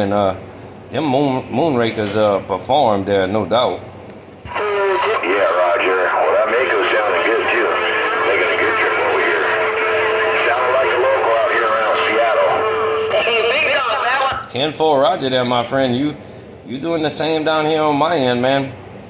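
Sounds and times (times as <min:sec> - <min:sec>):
steady radio tone: 0:04.5 - 0:14.3
voice over radio speaker: 0:04.5 - 0:14.5.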